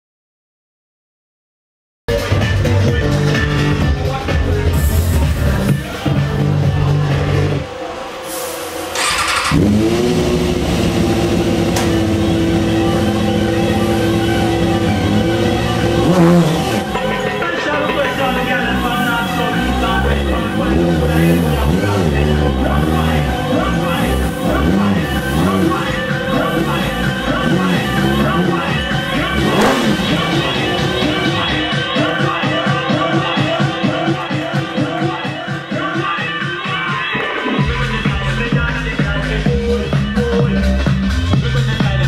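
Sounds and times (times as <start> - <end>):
rock music: 2.1 - 42.0
motorcycle engine revving: 8.9 - 32.3.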